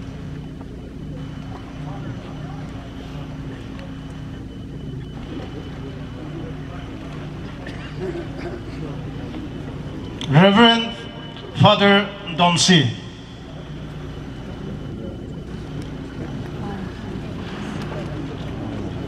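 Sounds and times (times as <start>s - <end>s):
murmur of voices: 0.0s - 19.0s
steady low hum: 0.0s - 19.0s.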